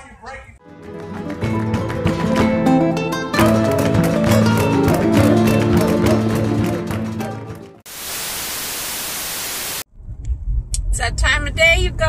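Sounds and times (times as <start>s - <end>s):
tv static hiss: 7.9s - 9.9s.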